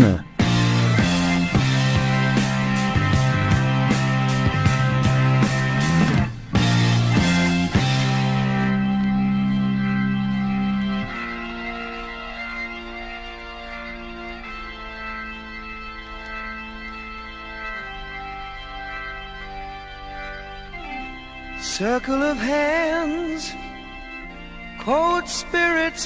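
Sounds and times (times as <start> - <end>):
organ sustained chords: 0.0 - 26.0.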